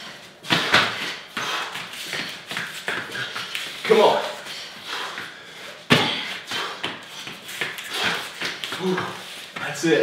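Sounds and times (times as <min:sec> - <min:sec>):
feet thudding on rubber mats: 0:00.4 - 0:09.8.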